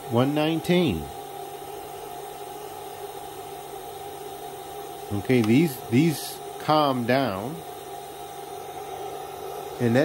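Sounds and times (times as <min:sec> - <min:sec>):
electrical hum and hiss: 0:00.0 - 0:10.0.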